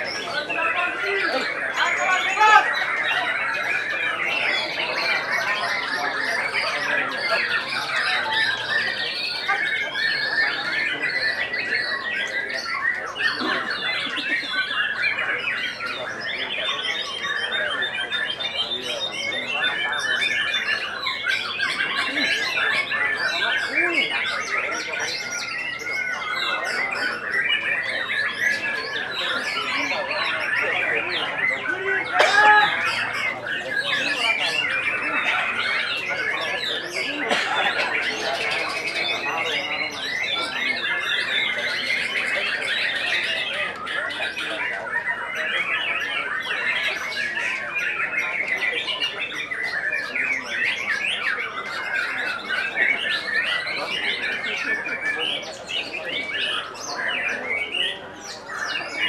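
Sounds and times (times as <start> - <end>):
murmur of human voices: 0.0 - 59.0
songbirds singing: 0.0 - 59.0.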